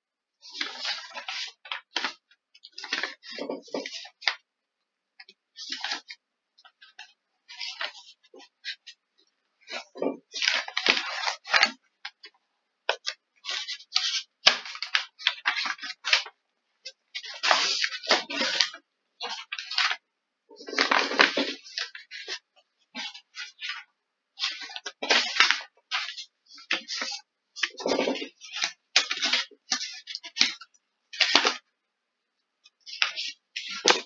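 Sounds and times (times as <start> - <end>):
rustling and crackling: 0.4 - 4.5, 5.2 - 31.7, 32.6 - 34.0.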